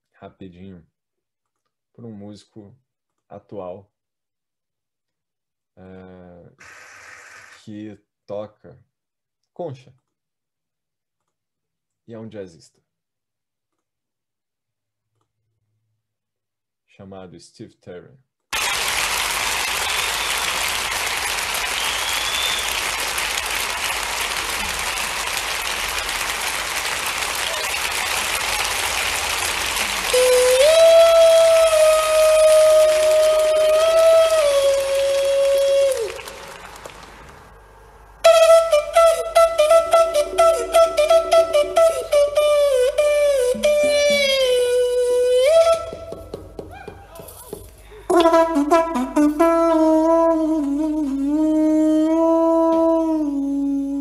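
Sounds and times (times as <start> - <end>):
audience applause: 18.6 - 37.6
conch shells playing held notes: 28.2 - 37.2, 38.2 - 46.2, 48.1 - 53.8.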